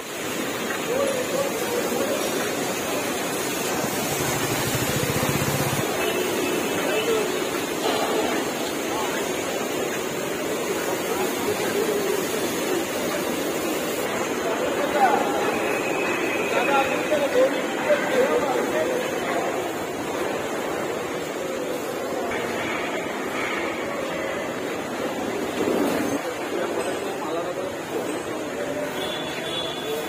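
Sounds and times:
railway workshop din: 0:00.0 - 0:30.0.

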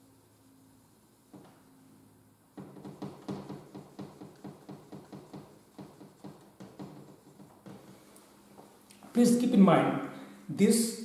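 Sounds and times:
marker scratching on whiteboard: 0:02.6 - 0:08.1.

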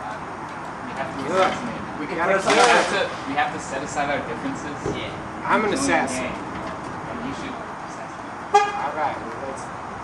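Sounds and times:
outdoor background noise: 0:00.0 - 0:10.0
vehicle horn toot: 0:08.5 - 0:09.0.

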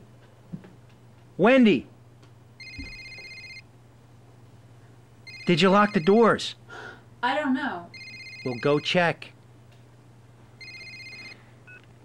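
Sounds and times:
steady low hum: 0:00.0 - 0:12.0
telephone ringing: 0:02.6 - 0:03.6, 0:05.2 - 0:06.4, 0:07.9 - 0:09.1, 0:10.6 - 0:11.8.

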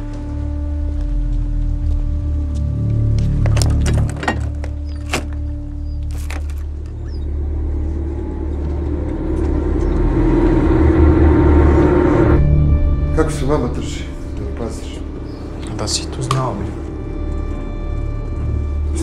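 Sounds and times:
droning music score: 0:00.0 - 0:19.0
truck engine rumble: 0:00.0 - 0:19.0.

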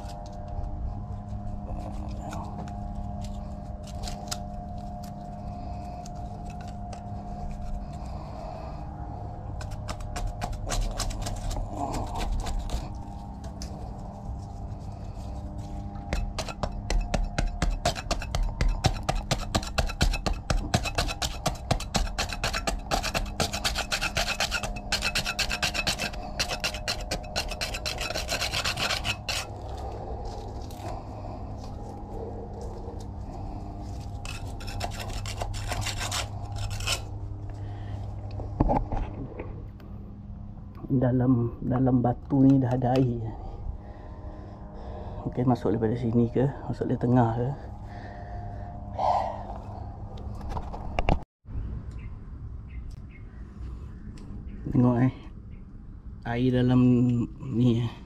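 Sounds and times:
metal scraper rasping on concrete: 0:09.6 - 0:13.0, 0:16.0 - 0:29.7, 0:34.2 - 0:37.1.

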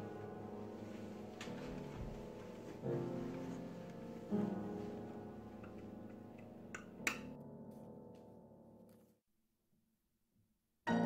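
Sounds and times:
low piano chord: 0:00.0 - 0:08.8.

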